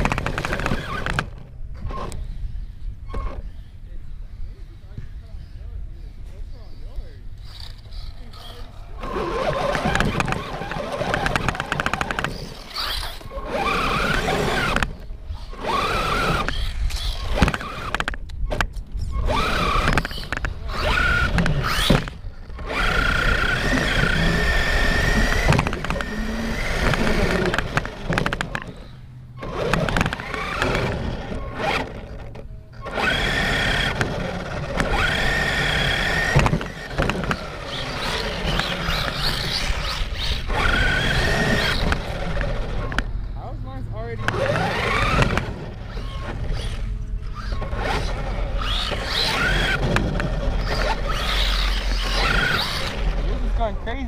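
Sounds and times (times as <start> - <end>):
electric motor whining: 0.0 - 3.7, 7.4 - 18.2, 19.0 - 43.4, 44.0 - 54.0
tyre and road noise: 0.0 - 4.1, 4.8 - 54.0.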